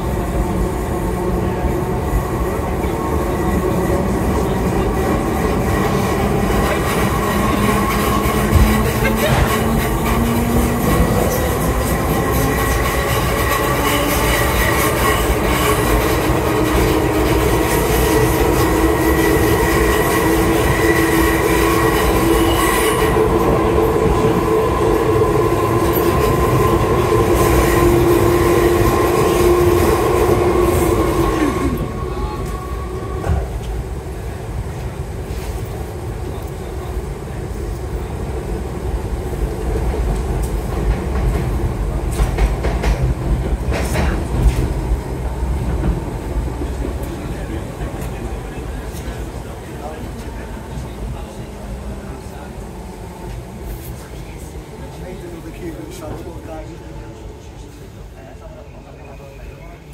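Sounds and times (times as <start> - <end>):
train rumble and rattle: 0.0 - 59.9.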